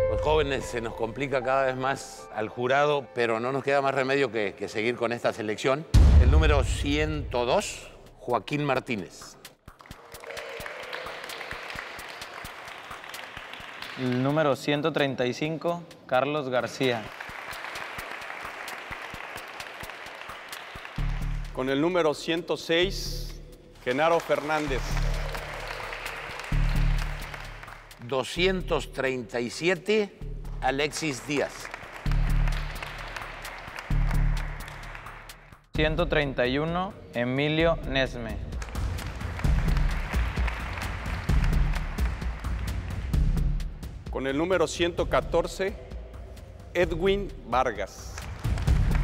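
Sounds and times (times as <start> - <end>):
background music with low beat: 0.0 - 2.4, 5.9 - 49.0
small group applause: 9.7 - 14.5, 17.1 - 21.5, 23.8 - 28.1, 30.8 - 35.4, 38.5 - 43.1, 48.2 - 49.0.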